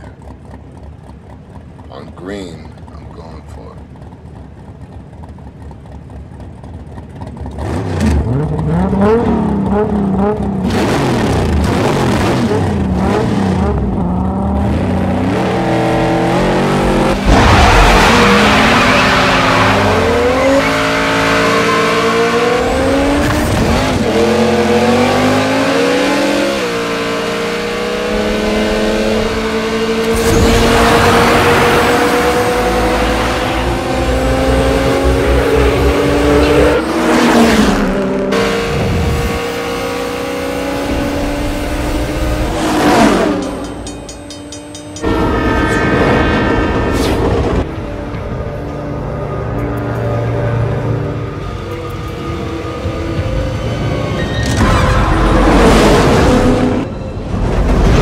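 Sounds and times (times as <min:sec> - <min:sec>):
car engines revving and accelerating: 0:00.0 - 0:58.0
tire squeal: 0:17.2 - 0:23.6, 0:42.4 - 0:47.7, 0:51.3 - 0:57.7.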